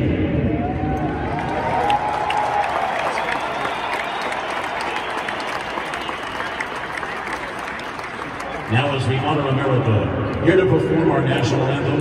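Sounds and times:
stadium crowd applauding: 0.6 - 10.0.

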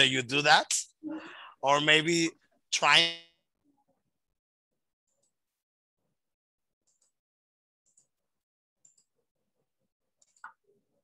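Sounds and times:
man speaking over video call: 0.0 - 1.0, 1.6 - 3.4.

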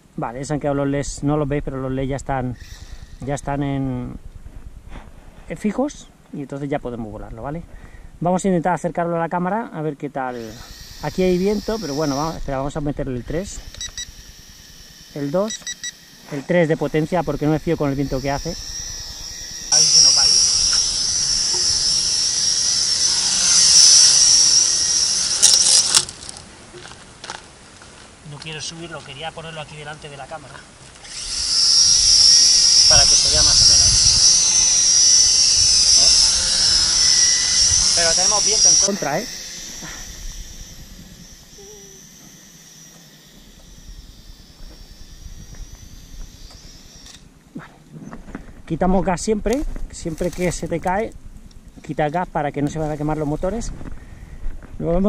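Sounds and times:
wind rumble on microphone: 0.9 - 5.5, 32.0 - 38.2, 52.8 - 55.0
toy drone motors whining: 2.0 - 4.0, 10.3 - 27.4, 31.0 - 47.3, 49.5 - 51.0
drone clattering: 10.6 - 26.4, 31.0 - 47.2.

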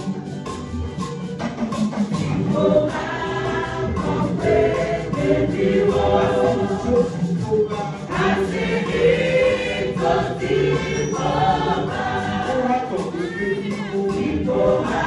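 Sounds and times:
choir singing a hymn: 2.2 - 15.0.

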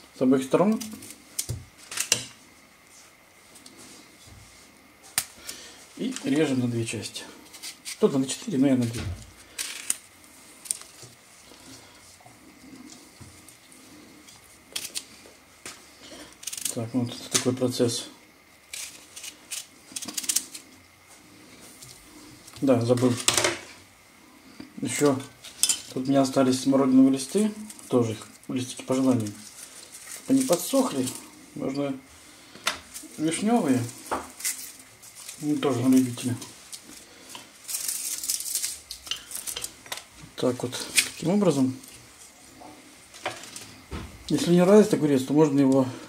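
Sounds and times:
cucumbers clicking and rustling: 7.5 - 11.8, 14.3 - 17.7, 18.7 - 20.8, 24.9 - 31.3, 32.8 - 42.0.

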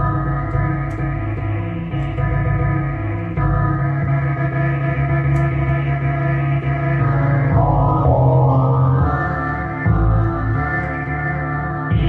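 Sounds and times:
sustained keyboard chords: 6.6 - 12.0
deep steady bass: 7.0 - 10.9.

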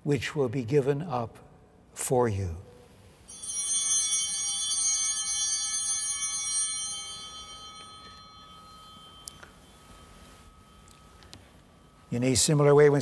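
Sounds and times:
altar bells ringing: 3.2 - 13.0.

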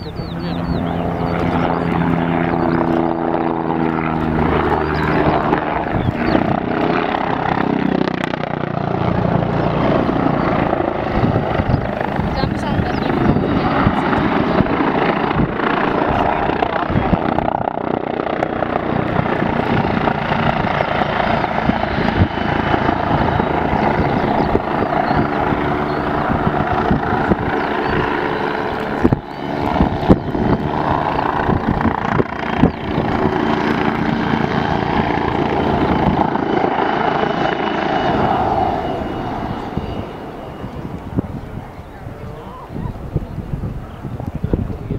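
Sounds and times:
helicopter rotor beating: 0.0 - 44.9
turbine noise: 0.0 - 44.9.

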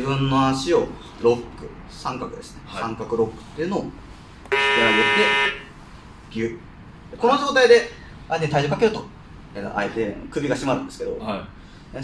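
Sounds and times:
harsh electronic buzzer: 4.5 - 5.7.

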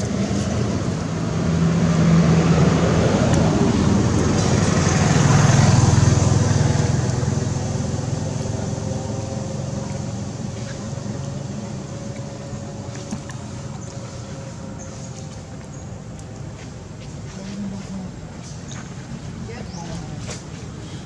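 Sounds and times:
vehicle engine running: 0.0 - 20.9.

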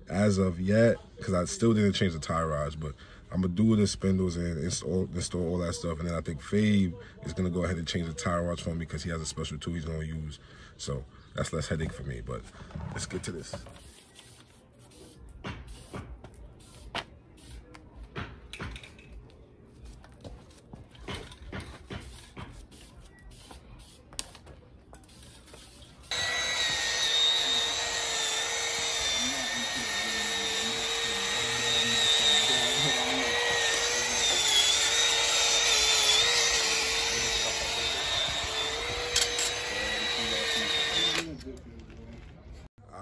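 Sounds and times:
power tool motor whining: 26.1 - 41.3.

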